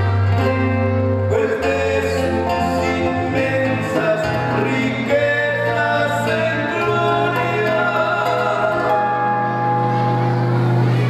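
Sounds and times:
guitar accompaniment: 0:00.0 - 0:11.0
two men singing in harmony: 0:01.2 - 0:09.5.

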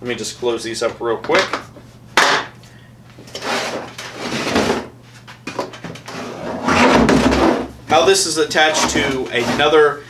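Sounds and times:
plastic toolbox scraping: 0:03.3 - 0:04.9, 0:06.0 - 0:09.8.

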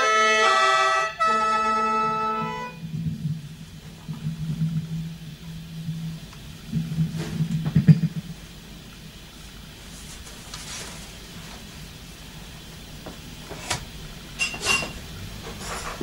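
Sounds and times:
low uneven rumbling: 0:01.2 - 0:16.0.

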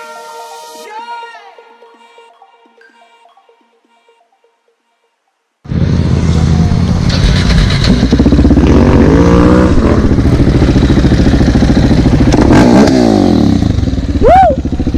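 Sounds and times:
another engine revving: 0:05.7 - 0:13.9
motorcycle engine running: 0:05.7 - 0:14.9.

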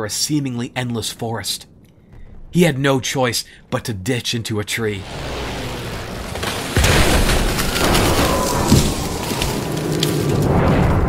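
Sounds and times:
low rumble: 0:00.3 - 0:04.0
heavy boom crash: 0:05.0 - 0:09.2.

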